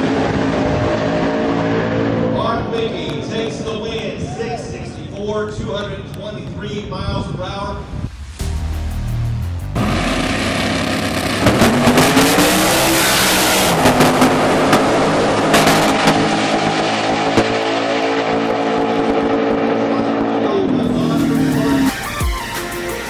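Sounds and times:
race cars accelerating hard: 0.0 - 3.8, 9.7 - 22.2
electronic music: 8.2 - 12.4, 20.8 - 23.0.

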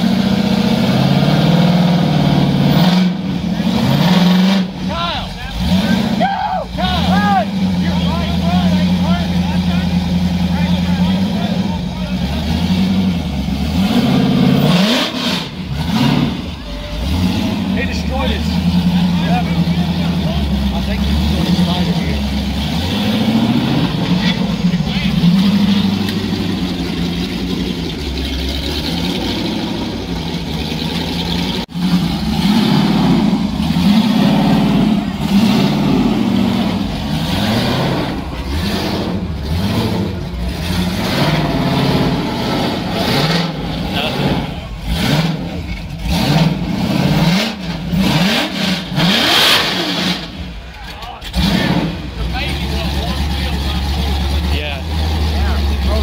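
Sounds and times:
engine revving: 0.0 - 56.0.

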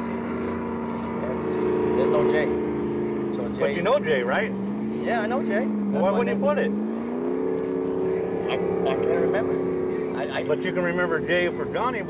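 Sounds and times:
motorboat engine idling: 0.0 - 12.0.

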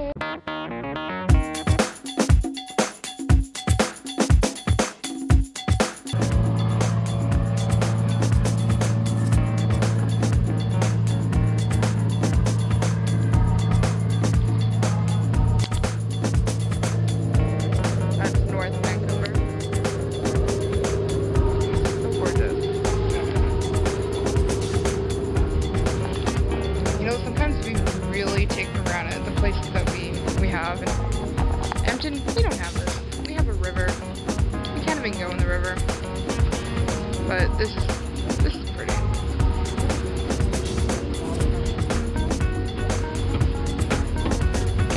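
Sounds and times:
boat engine droning: 6.2 - 44.9
wind buffeting microphone: 6.4 - 38.5.

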